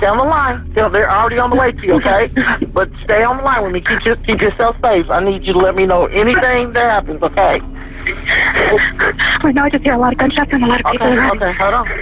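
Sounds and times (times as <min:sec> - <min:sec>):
person speaking over telephone: 0:00.0 - 0:07.6, 0:08.7 - 0:12.0.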